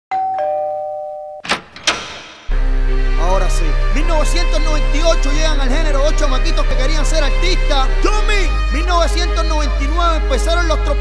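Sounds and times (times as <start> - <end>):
two-tone doorbell chime: 0.1 - 1.5.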